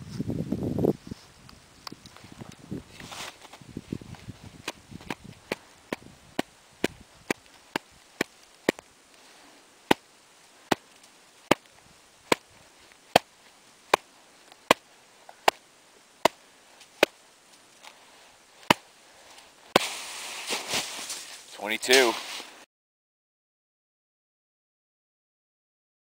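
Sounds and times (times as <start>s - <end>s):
hand tapping snow: 2.9s - 9.3s, 10.7s - 13.3s, 13.9s - 15.6s, 16.2s - 17.2s, 19.7s - 22.6s.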